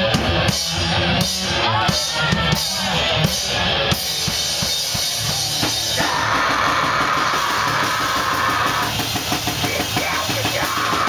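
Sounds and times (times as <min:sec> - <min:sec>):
drum kit: 0:00.0 - 0:11.0
heavy rock band playing: 0:00.0 - 0:11.0.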